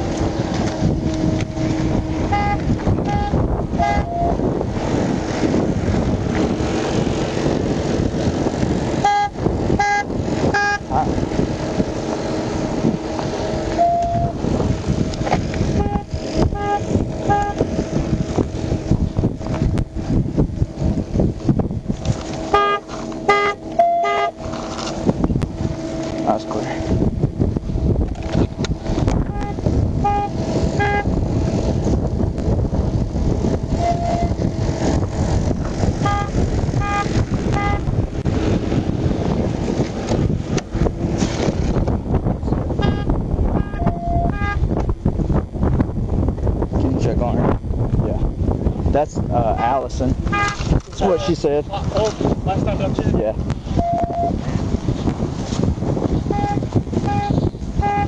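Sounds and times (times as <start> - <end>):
loud rushing noise: 0.0 - 47.0
low hum: 0.0 - 51.0, 53.4 - 58.0
short high electronic beeps: 53.8 - 54.3.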